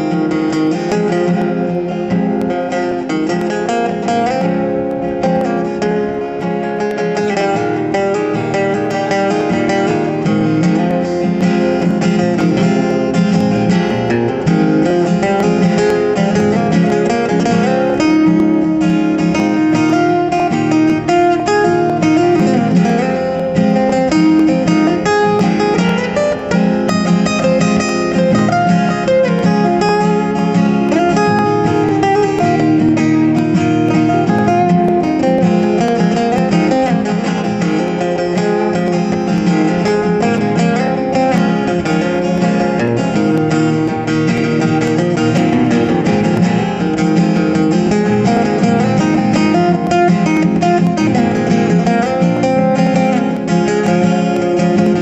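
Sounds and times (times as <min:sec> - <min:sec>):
acoustic guitars strumming chords: 0:00.0 - 0:55.0.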